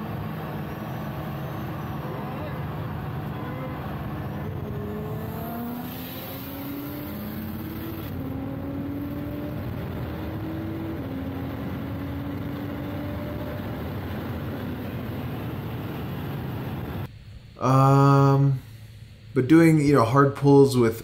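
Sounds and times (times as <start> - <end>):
car engine accelerating: 0.0 - 17.1.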